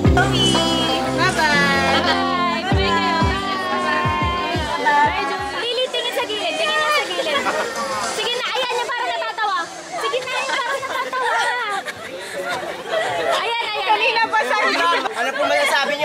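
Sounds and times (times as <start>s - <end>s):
group of people talking: 0.0s - 16.0s.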